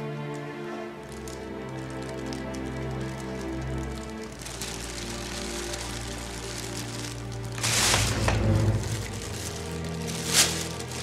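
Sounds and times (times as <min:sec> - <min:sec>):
dramatic sustained music tones: 0:00.0 - 0:11.0.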